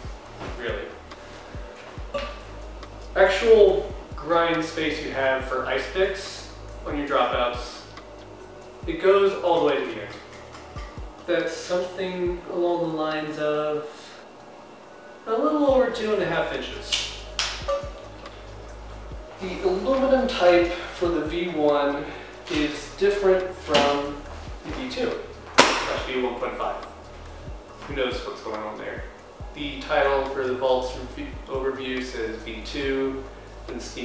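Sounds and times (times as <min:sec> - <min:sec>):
low steady hum: 0:00.0 - 0:34.0.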